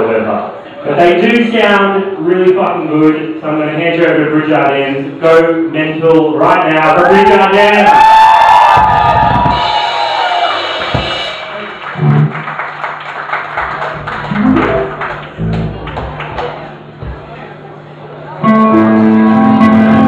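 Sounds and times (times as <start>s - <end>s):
crowd cheering: 7.1s - 17.6s
drum thumps: 8.7s - 9.9s, 10.8s - 12.3s, 17.0s - 17.3s
rock band playing loudly: 9.0s - 12.4s, 14.0s - 16.2s, 18.4s - 20.0s
held low bass note: 14.0s - 16.0s.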